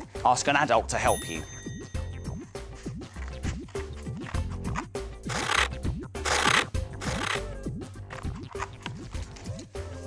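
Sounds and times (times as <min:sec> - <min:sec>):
light background music: 0:00.0 - 0:10.0
scissors cutting card: 0:03.1 - 0:07.5.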